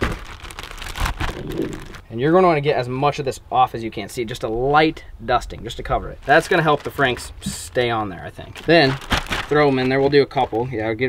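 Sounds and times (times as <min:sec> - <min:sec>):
plastic bag crinkling: 0:00.0 - 0:02.1, 0:06.1 - 0:11.0.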